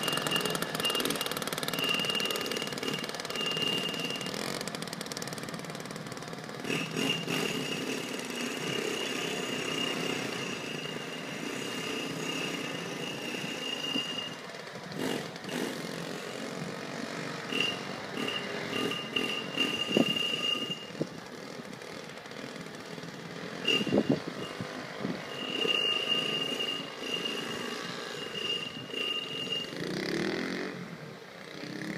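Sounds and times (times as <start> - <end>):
moped engines: 0.0 - 31.9.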